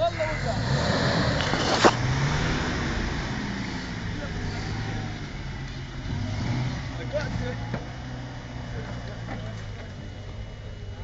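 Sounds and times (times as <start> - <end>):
pickup engine revving: 0.0 - 11.0.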